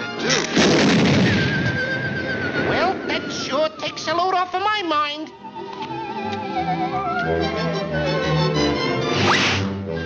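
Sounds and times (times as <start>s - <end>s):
orchestral cartoon music: 0.0s - 10.0s.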